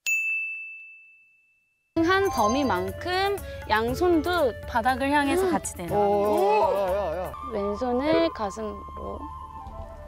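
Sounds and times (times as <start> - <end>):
bright ding: 0.0 - 1.7.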